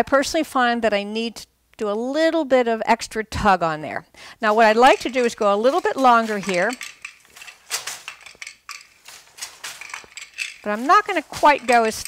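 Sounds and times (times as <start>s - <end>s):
wooden loom clacking and rattling: 4.5s - 12.0s.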